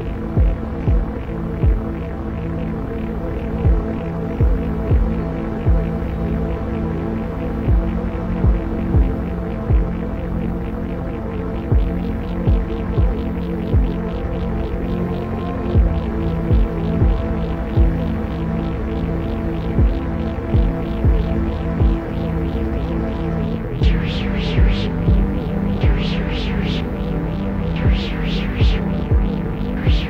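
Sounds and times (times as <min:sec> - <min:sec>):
sustained synthesizer chord: 0:00.0 - 0:30.0
deep electronic kick drum: 0:00.3 - 0:02.1, 0:03.6 - 0:06.2, 0:07.6 - 0:10.3, 0:11.7 - 0:14.2, 0:15.8 - 0:18.2, 0:19.8 - 0:22.3, 0:23.7 - 0:30.0
fast pulsing hiss: 0:23.8 - 0:30.0.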